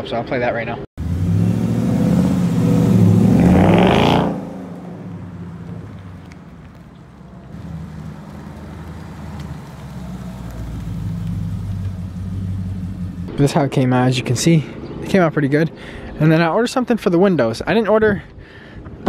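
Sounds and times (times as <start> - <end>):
car engine accelerating: 1.0 - 13.3
low steady engine sound: 4.4 - 13.3.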